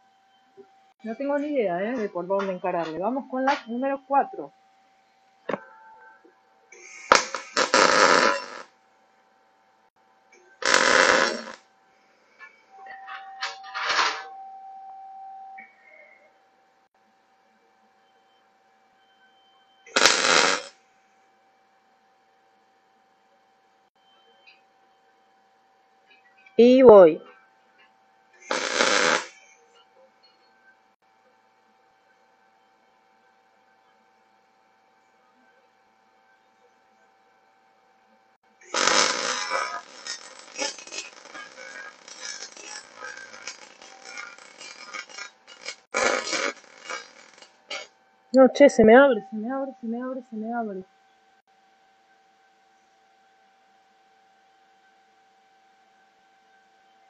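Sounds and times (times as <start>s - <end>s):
welding arc crackle: 6.8s - 8.7s, 10.3s - 11.6s, 13.1s - 14.3s, 19.9s - 20.8s, 28.4s - 29.6s, 38.6s - 47.9s.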